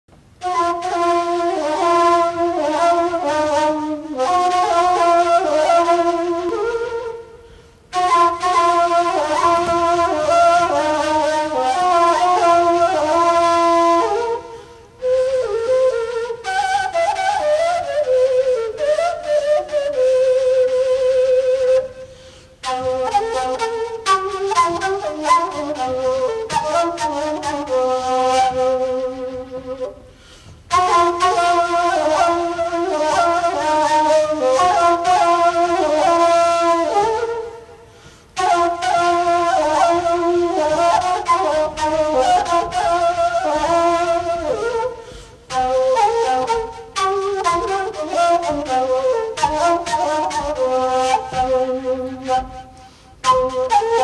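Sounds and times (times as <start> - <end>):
wooden flute solo melody: 0.1 - 54.0.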